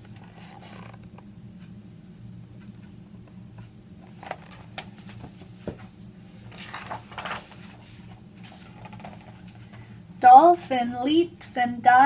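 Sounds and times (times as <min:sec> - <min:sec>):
steady low hum: 0:00.0 - 0:12.0
paper page rustling: 0:00.1 - 0:01.0, 0:04.0 - 0:09.5.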